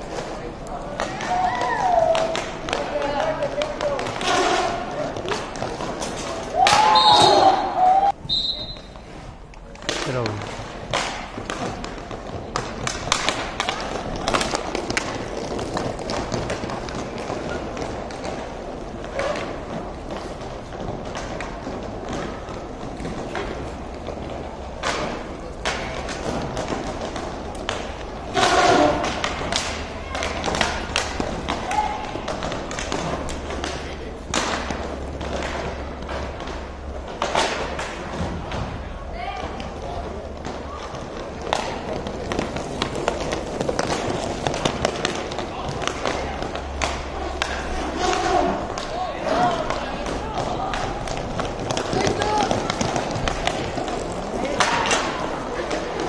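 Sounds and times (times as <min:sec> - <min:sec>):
hockey sticks hitting puck: 0:00.0 - 0:56.0
skate wheels rolling: 0:00.0 - 0:56.0
people shouting: 0:01.1 - 0:02.4, 0:06.5 - 0:08.2, 0:31.5 - 0:32.3, 0:47.0 - 0:51.2, 0:51.8 - 0:53.0.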